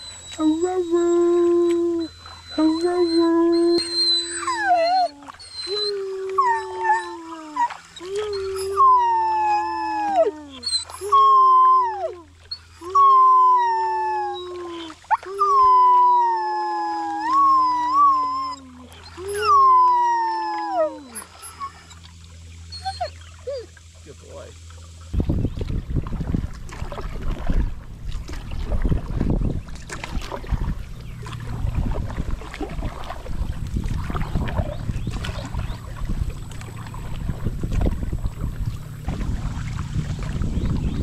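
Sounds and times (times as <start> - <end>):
dog howling: 0.2 - 21.8
second howl at different pitch: 0.4 - 21.8.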